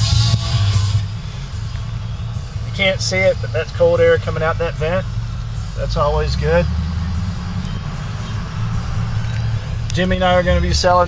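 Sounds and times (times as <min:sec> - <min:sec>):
diesel engine rumble in cab: 0:00.0 - 0:11.0
tyre and road noise: 0:00.0 - 0:11.0.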